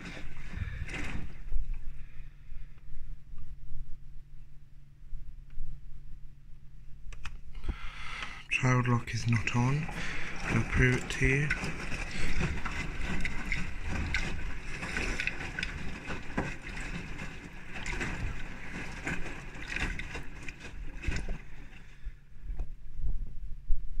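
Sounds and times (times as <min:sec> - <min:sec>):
water sloshing in washing machine: 0:00.0 - 0:02.2, 0:08.6 - 0:22.3
washing machine low hum: 0:00.0 - 0:24.0.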